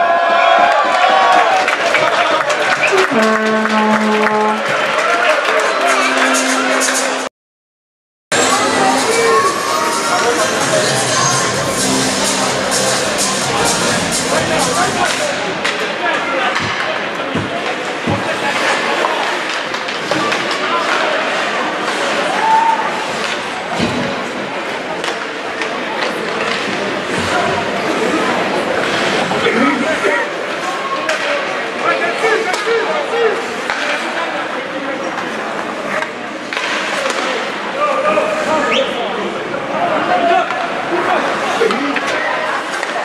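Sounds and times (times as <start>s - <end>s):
murmur of crowd voices: 0.0s - 7.3s, 8.3s - 43.0s
hockey sticks and puck clacking: 15.1s - 21.2s, 25.0s - 27.2s, 33.6s - 34.2s, 35.2s - 37.5s, 41.6s - 43.0s.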